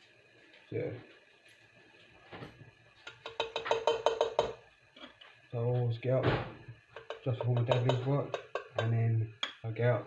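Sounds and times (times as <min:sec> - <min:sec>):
steady ringing tone: 0:03.0 - 0:04.7.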